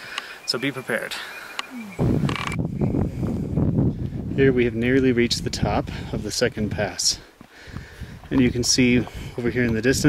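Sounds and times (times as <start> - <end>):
wind buffeting microphone: 1.8 - 10.0.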